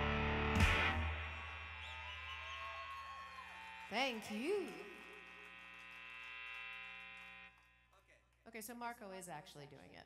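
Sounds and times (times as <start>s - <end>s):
amp hum: 0.0s - 8.0s.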